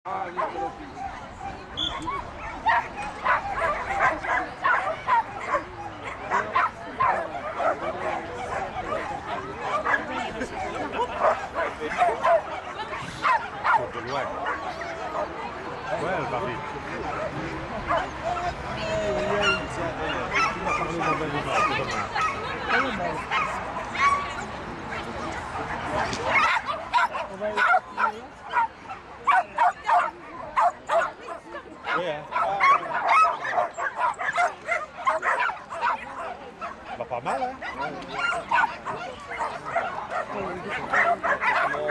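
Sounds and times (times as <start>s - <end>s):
dog yipping barks: 1.8s - 8.7s, 26.3s - 31.1s, 31.9s - 36.8s, 37.7s - 40.3s, 40.9s - 41.8s
dog yipping and barking: 31.9s - 36.0s.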